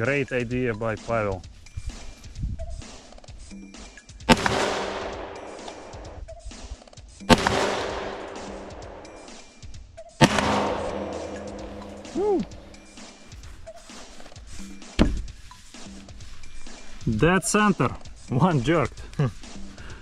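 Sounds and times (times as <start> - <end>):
rifle shots with echo: 4.3 - 6.2, 7.3 - 9.4, 10.2 - 12.9.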